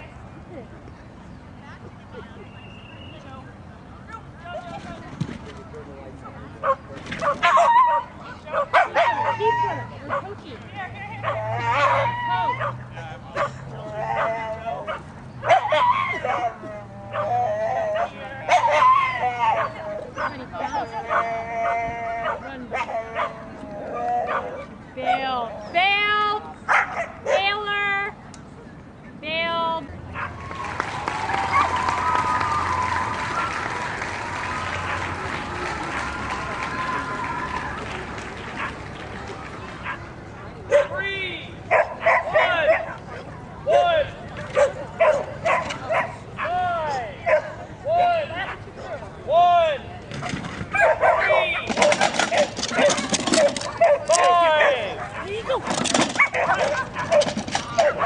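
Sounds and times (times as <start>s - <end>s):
dog yipping and squealing: 50.7s - 58.0s.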